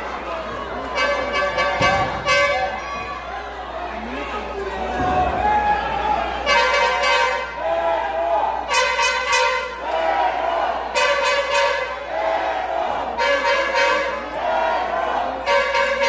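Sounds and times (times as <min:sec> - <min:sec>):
voices shouting: 0:00.0 - 0:16.0
horn blasts: 0:00.8 - 0:03.0, 0:06.2 - 0:07.8, 0:08.6 - 0:12.4, 0:13.1 - 0:16.0.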